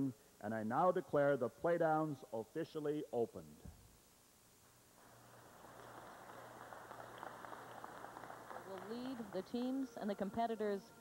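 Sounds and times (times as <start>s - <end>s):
crowd applauding: 5.1s - 9.8s.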